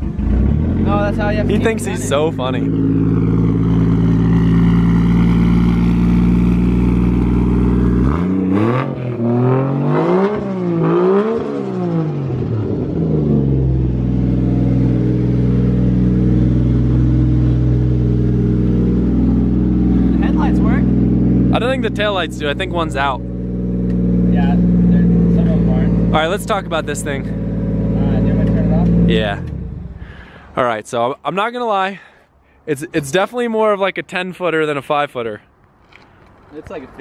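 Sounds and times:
car engine idling and revving: 0.0 - 30.5.

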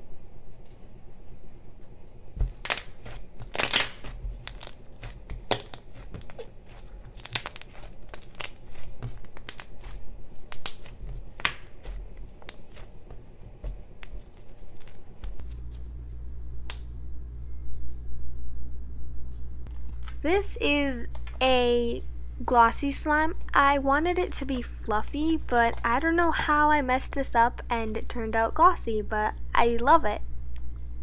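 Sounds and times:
slime crackling and snapping: 2.4 - 13.0, 14.0 - 15.7.

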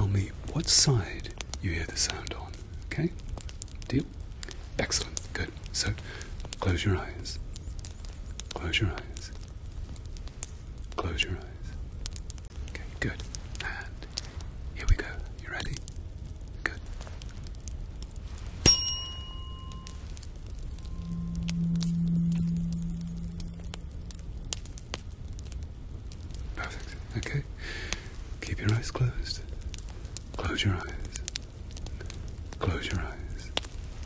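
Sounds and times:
low steady hum: 0.0 - 34.0
soft rustles and clicks: 11.7 - 32.6
tuning fork ringing: 18.6 - 24.3.

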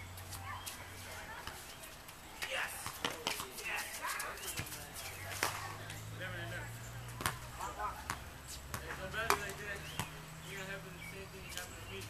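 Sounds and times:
soccer ball kicked and bouncing: 2.4 - 6.0, 7.2 - 10.2.

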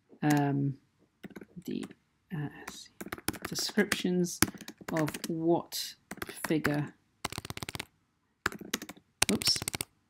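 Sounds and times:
typing on computer keyboard: 1.2 - 1.5, 2.7 - 5.4, 6.1 - 9.9.

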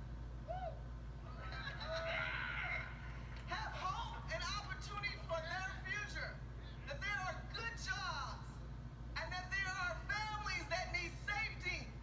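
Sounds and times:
steady low hum: 0.0 - 12.0
crowd cheering and whooping: 0.5 - 3.4.

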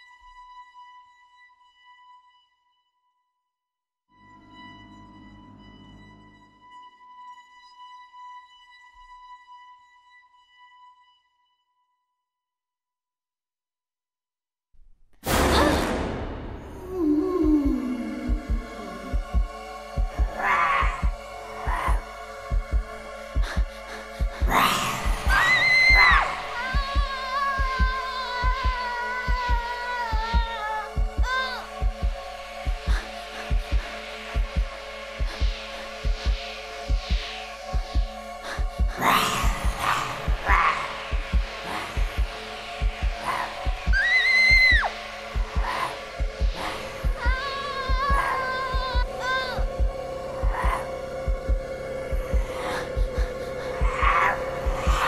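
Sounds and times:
heartbeat thumps: 16.2 - 55.0
droning music pad: 16.9 - 44.0, 44.9 - 55.0
high held cry: 24.5 - 29.2.

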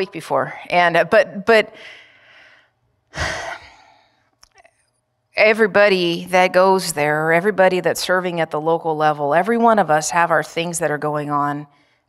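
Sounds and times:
woman sighing: 3.1 - 4.0.

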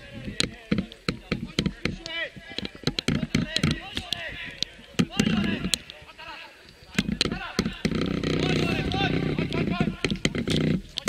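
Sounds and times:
players shouting: 0.0 - 10.2.

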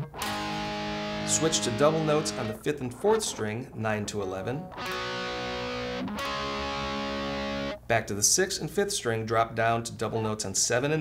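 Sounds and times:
electric guitar double notes: 0.0 - 7.8.

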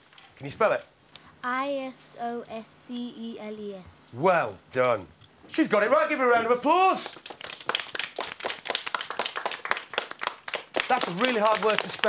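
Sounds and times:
children applauding: 7.1 - 12.0.

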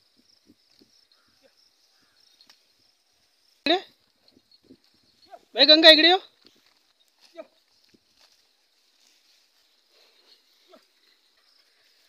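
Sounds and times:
high insect chirring: 0.0 - 12.0.

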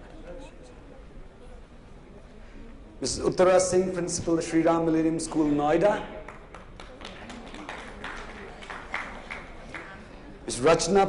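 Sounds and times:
faint room noise: 0.0 - 11.0
light scattered applause: 6.2 - 10.3.

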